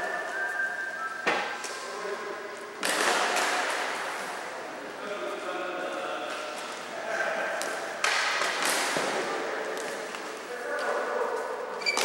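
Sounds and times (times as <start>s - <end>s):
sharp crack echoing in gymnasium: 2.7s - 4.5s, 7.4s - 12.0s.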